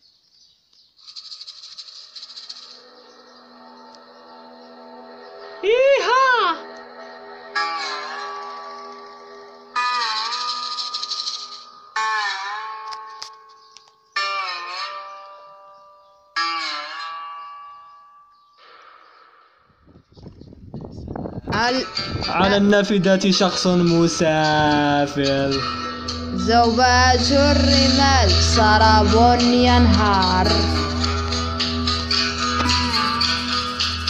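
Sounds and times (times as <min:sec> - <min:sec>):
fast-shaking rattle: 0:01.0 - 0:02.8, 0:10.1 - 0:11.7
held chord of steady tones: 0:02.8 - 0:09.8, 0:21.7 - 0:34.0.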